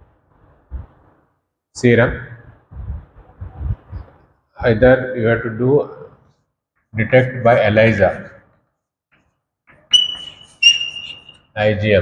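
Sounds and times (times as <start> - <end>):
chalk squeaking on blackboard: 9.9 - 11.5.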